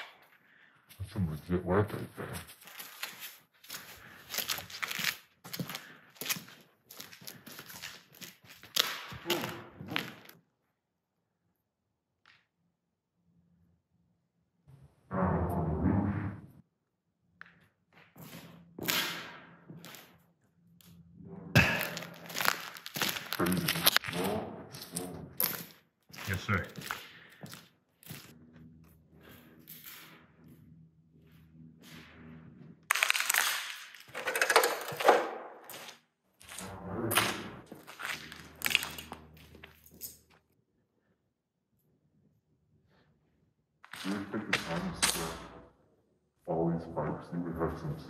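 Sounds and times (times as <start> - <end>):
debris crunching underfoot: 2.4 - 10.3, 21.6 - 28.3, 32.9 - 35.0, 35.6 - 40.3.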